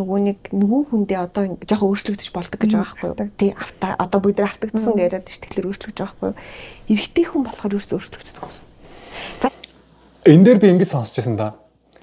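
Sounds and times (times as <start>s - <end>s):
person talking: 2.3s - 6.0s.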